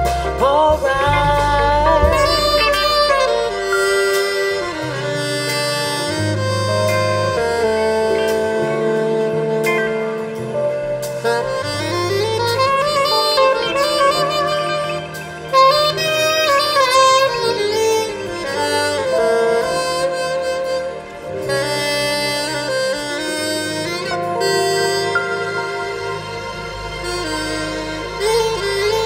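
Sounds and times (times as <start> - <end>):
held bass notes: 0.0 - 29.0
live band: 0.0 - 29.0
soprano saxophone melody: 0.0 - 29.0.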